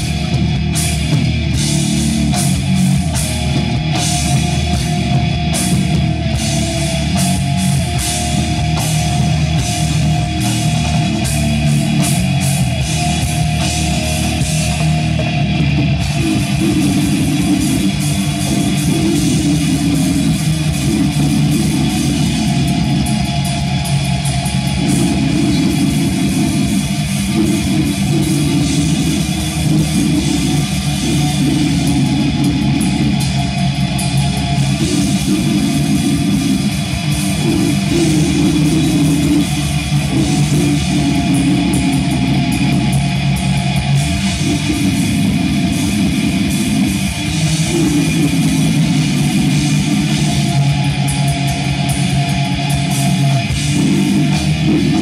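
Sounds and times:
distorted electric guitar: 0:00.0 - 0:55.0
drum and cymbal hits: 0:00.0 - 0:55.0
heavy metal band playing live: 0:00.0 - 0:55.0.

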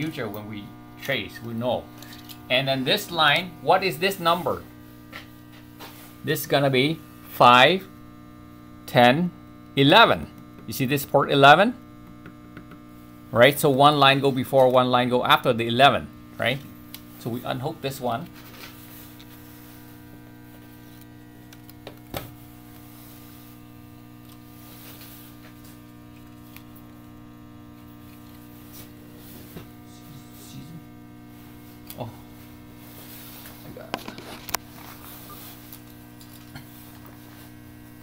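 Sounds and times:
electrical mains hum: 0:00.0 - 0:38.0.

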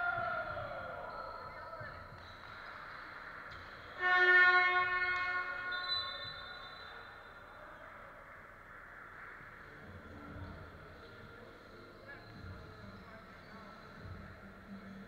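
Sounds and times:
buzzer horn: 0:04.0 - 0:06.7.

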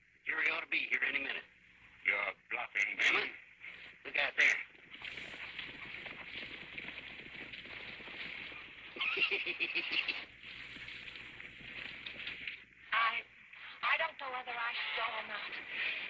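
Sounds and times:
man laughing heartily: 0:09.0 - 0:10.2.

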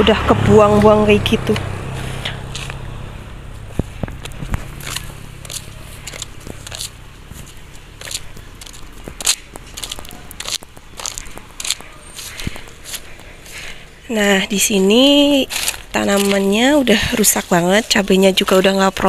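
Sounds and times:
footsteps through dry leaves: 0:01.9 - 0:14.0, 0:15.0 - 0:18.6.

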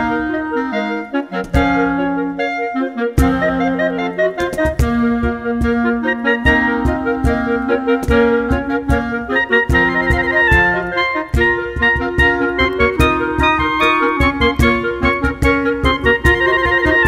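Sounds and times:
clarinets playing a march: 0:00.0 - 0:17.0
cajon struck with hands: 0:04.4 - 0:17.0.

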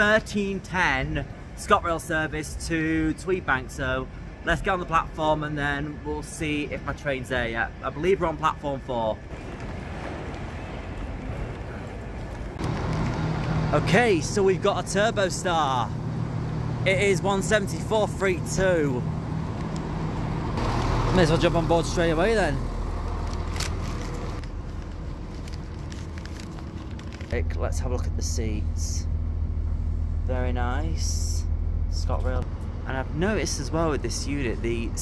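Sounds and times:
diesel train engine idling: 0:09.3 - 0:23.5.

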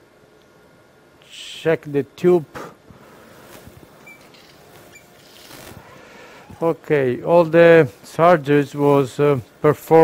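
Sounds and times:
faint room background noise: 0:00.0 - 0:10.0.

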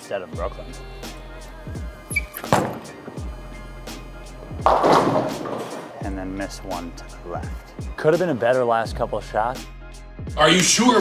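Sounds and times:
background music with steady beat: 0:00.0 - 0:11.0
bowling ball thudding and rolling: 0:02.2 - 0:03.3, 0:04.4 - 0:06.0
bowling pins clattering: 0:04.4 - 0:06.0.

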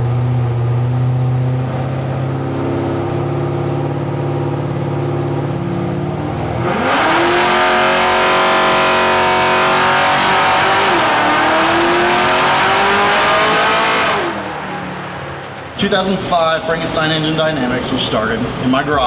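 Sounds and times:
car engine revving at full throttle: 0:00.0 - 0:16.8.

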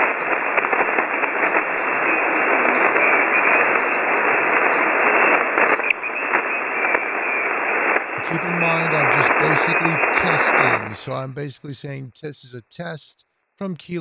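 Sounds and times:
shortwave radio static hiss: 0:00.0 - 0:14.0.

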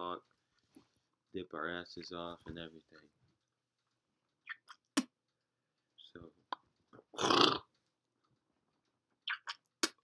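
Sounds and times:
man's throat noise: 0:06.5 - 0:07.8.

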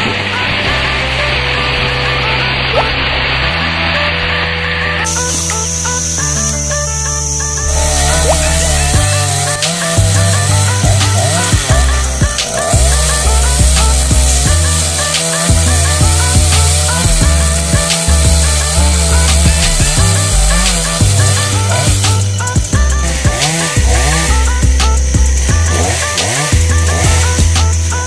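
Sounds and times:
chainsaw running and revving: 0:00.0 - 0:28.0
music with steady beat: 0:05.1 - 0:28.0.

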